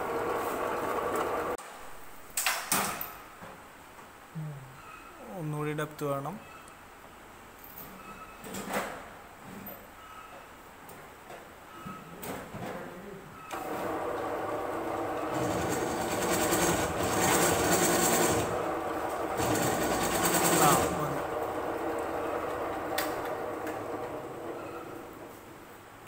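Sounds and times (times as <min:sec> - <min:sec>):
pillar drill running: 0:13.6 - 0:25.2.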